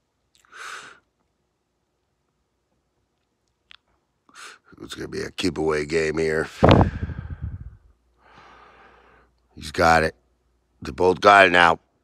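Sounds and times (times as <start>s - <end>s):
breathing huffs and exhales: 6.6s - 9.3s.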